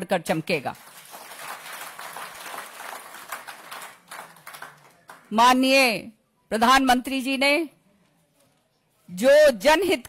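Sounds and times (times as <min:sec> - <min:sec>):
audience applauding: 0:00.8 - 0:05.3.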